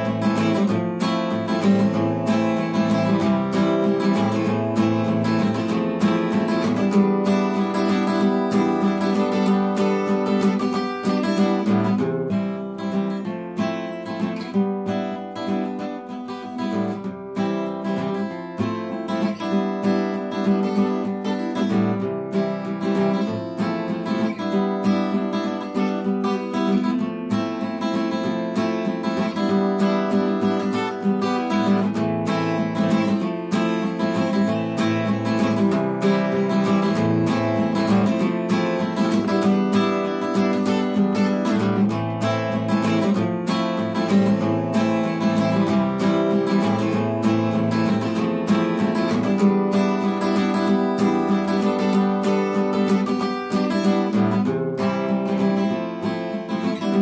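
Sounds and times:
acoustic guitar music: 0:00.0 - 0:57.0.

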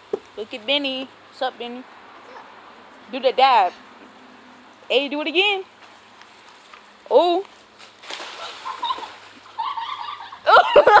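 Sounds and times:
child shouting: 0:02.2 - 0:02.5
splashing on water slide: 0:08.0 - 0:10.2.

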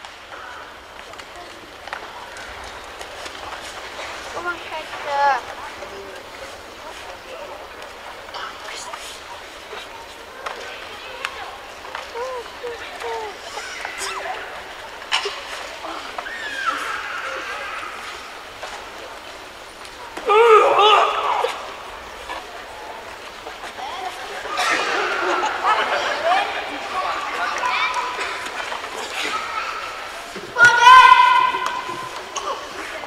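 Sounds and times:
indoor crowd murmur: 0:00.0 - 0:33.0.

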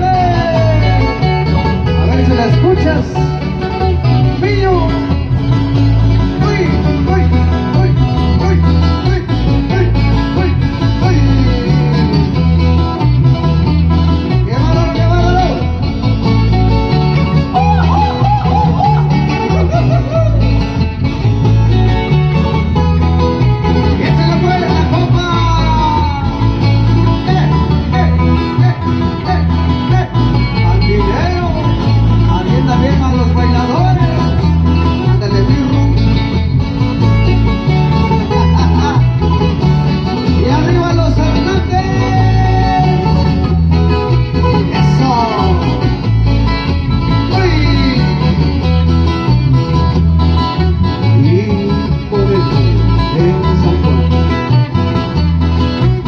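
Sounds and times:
person singing: 0:00.0 - 0:03.4, 0:06.4 - 0:12.6, 0:17.4 - 0:20.7, 0:40.2 - 0:46.1, 0:46.7 - 0:48.8, 0:51.0 - 0:54.4
bass line in even beat: 0:00.0 - 0:56.0
plucked strings: 0:00.0 - 0:56.0.

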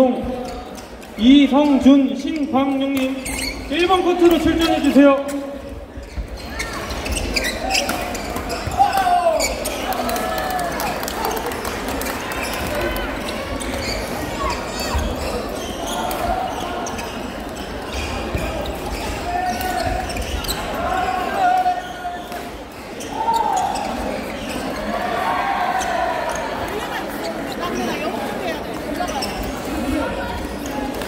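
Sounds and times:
shoes squeaking on court floor: 0:00.0 - 0:10.3, 0:11.0 - 0:31.0.

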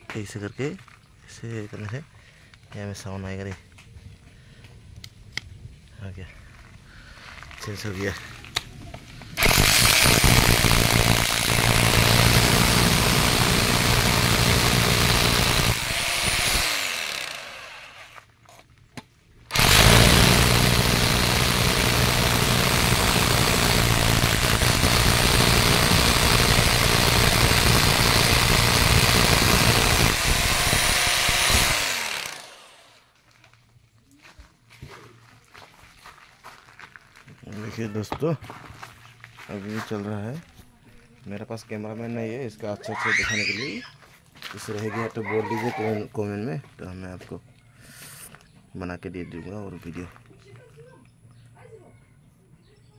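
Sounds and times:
motor winding down: 0:09.4 - 0:18.2, 0:19.5 - 0:33.0
rotary hammer drilling into masonry: 0:09.4 - 0:18.2, 0:19.5 - 0:32.9.

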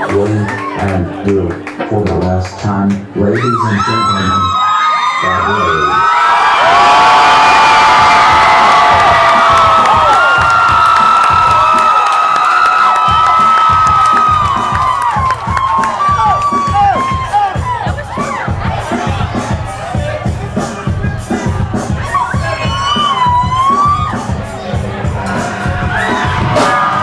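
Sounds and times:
crowd cheering and screaming: 0:00.0 - 0:01.4, 0:03.2 - 0:27.0
people clapping: 0:00.0 - 0:03.2, 0:05.6 - 0:19.5.

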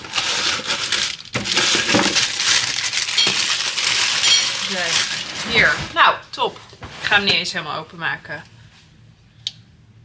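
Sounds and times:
plastic packaging crinkling: 0:00.0 - 0:05.9.

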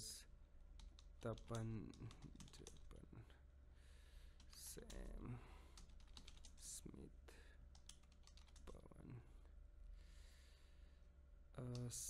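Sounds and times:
faint low hum: 0:00.0 - 0:12.0
keyboard typing clicks: 0:00.8 - 0:02.9, 0:05.8 - 0:06.6, 0:07.7 - 0:08.8.

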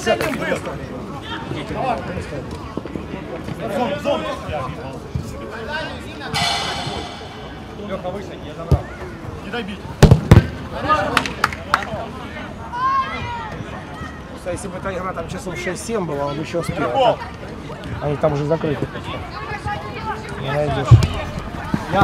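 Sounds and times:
referee's whistle blast: 0:06.4 - 0:08.0.

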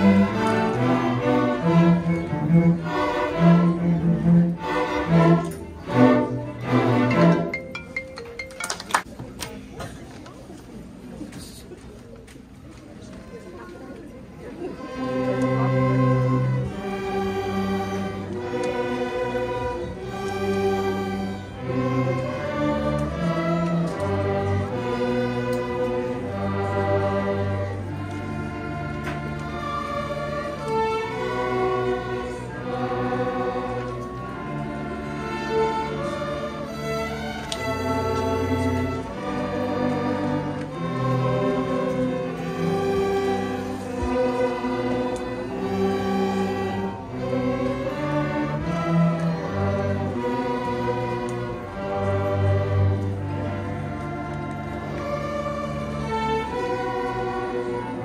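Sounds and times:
string orchestra sustained chords: 0:00.0 - 0:09.1, 0:13.0 - 0:58.0.

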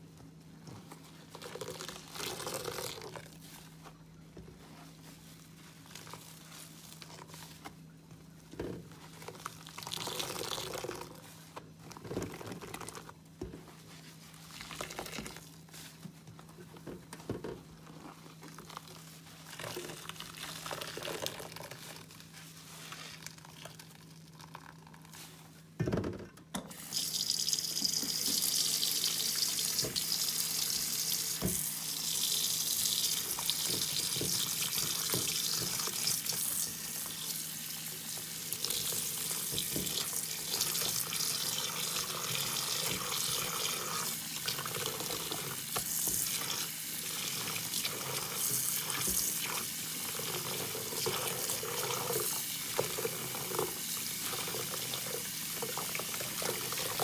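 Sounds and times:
sponges swishing in water: 0:02.0 - 0:08.1
tap running into water: 0:32.7 - 0:37.2.

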